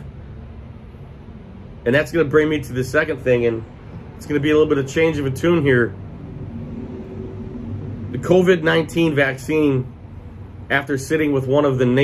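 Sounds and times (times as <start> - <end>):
faint hum: 0.0 - 12.0
low background rumble: 0.0 - 12.0.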